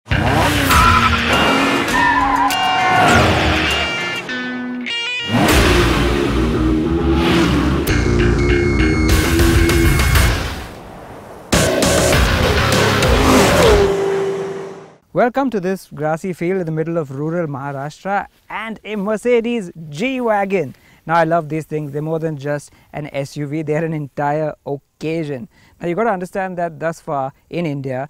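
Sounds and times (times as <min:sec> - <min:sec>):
car engine: 0:00.1 - 0:15.0
tyres squealing: 0:00.4 - 0:05.6
title-sequence music: 0:02.5 - 0:10.8, 0:11.5 - 0:14.8.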